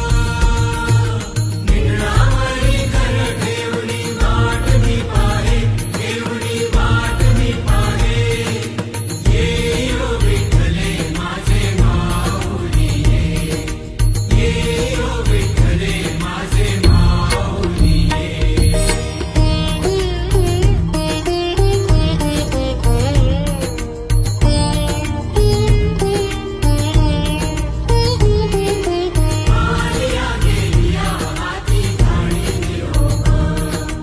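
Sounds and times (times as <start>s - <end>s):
person singing devotional chant: 0.0s - 19.9s, 28.7s - 34.0s
drums and instruments: 0.0s - 34.0s.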